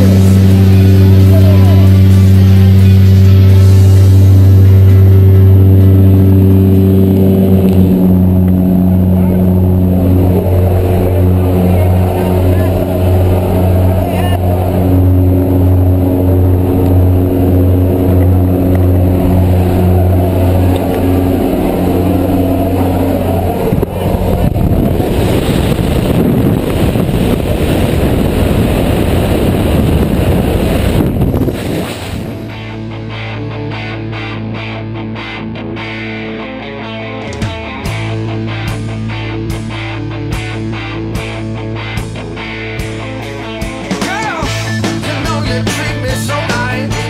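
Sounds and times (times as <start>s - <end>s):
rush of wind: 0.0s - 32.8s
propeller engine droning: 0.0s - 47.0s.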